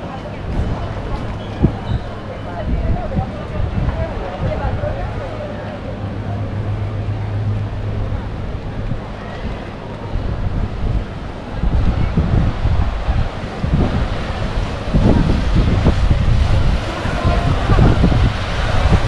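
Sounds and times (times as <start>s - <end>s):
surf breaking on rocky shore: 0.0s - 19.0s
wind buffeting microphone: 0.0s - 19.0s.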